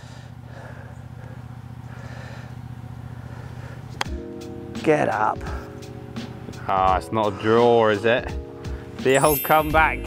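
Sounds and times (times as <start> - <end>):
steady low hum: 0.0 - 4.0
background music: 4.1 - 10.0.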